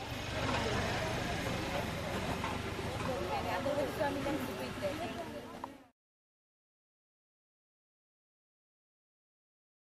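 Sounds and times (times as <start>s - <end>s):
many people talking: 0.0s - 5.9s.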